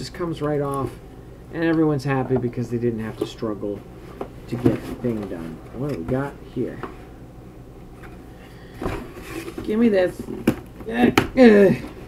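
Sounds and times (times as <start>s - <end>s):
low steady hum: 0.0s - 12.0s
cardboard scraping: 8.0s - 10.4s.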